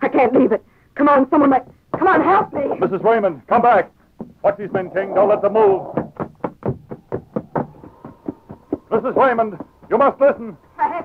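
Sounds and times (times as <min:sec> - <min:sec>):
hurried footsteps: 0:01.4 - 0:11.0.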